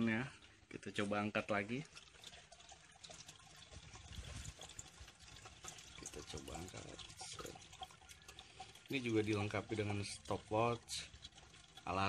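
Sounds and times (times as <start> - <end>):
water sloshing and dripping: 0.0 - 12.0.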